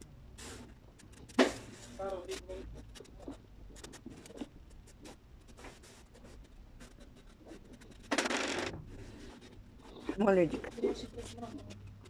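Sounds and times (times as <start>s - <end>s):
handling scratching and clicks: 9.4s - 12.0s.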